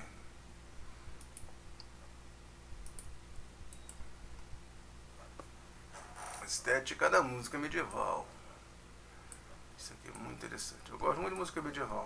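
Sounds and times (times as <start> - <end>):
low steady hum: 0.0 - 12.0
computer clicks: 1.2 - 2.0, 2.8 - 4.5.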